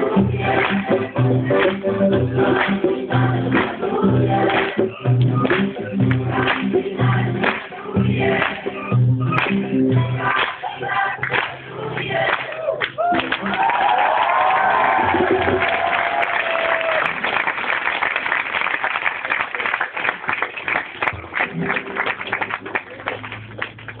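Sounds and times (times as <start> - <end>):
crowd clapping: 0.0 - 24.0
crowd cheering: 11.3 - 24.0.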